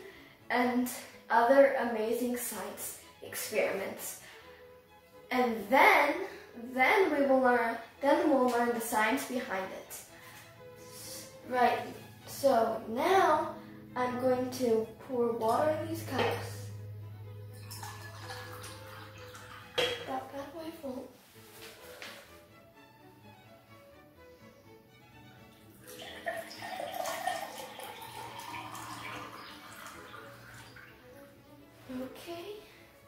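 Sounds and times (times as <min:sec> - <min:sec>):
water pouring into a glass: 0:17.5 - 0:20.1, 0:25.6 - 0:31.1.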